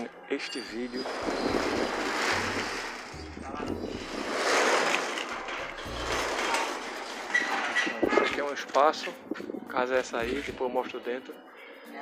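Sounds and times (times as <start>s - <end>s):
wind buffeting microphone: 9.2s - 9.8s.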